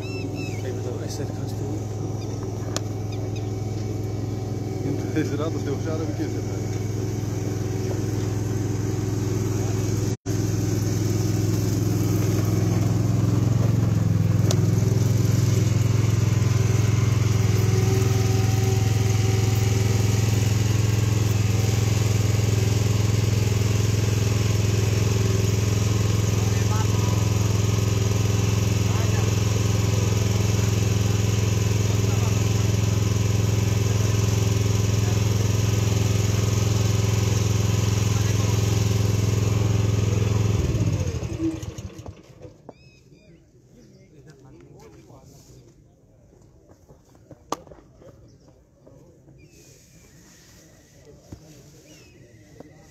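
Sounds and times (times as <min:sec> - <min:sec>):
engine drone: 0:00.0 - 0:42.5.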